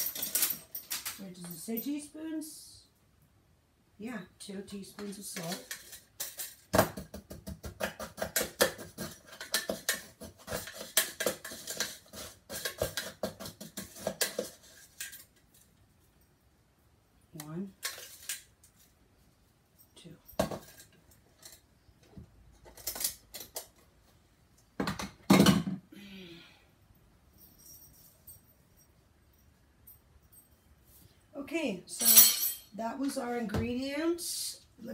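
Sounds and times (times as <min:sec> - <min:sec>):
metal spoon clinking on glass jar: 0:31.9 - 0:32.7.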